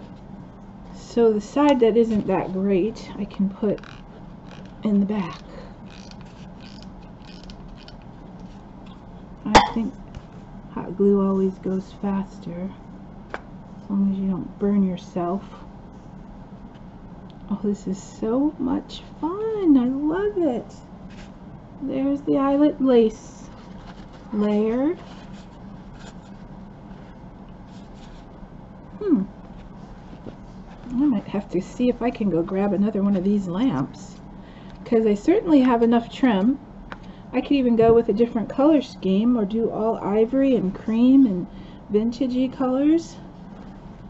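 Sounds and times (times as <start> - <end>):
low steady hum: 0.0 - 44.0
light creaks: 3.7 - 8.0
fabric rustling: 23.4 - 28.4, 29.4 - 33.5.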